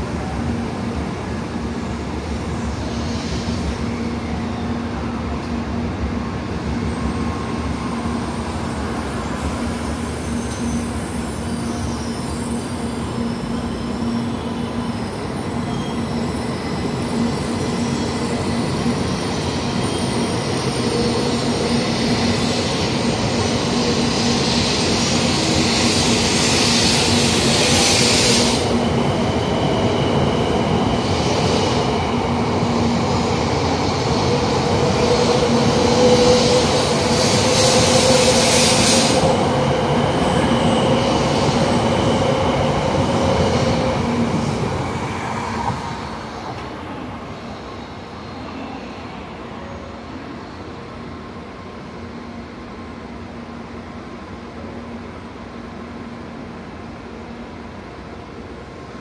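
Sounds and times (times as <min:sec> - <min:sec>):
train hum with rising whine: 0:00.0 - 0:59.0
train hissing: 0:00.1 - 0:05.1, 0:06.9 - 0:51.0.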